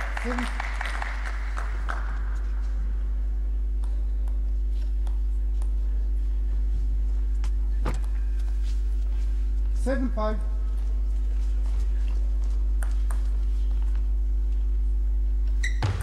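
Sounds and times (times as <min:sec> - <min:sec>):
spectators applauding: 0:00.0 - 0:02.8
steady low hum: 0:00.0 - 0:16.0.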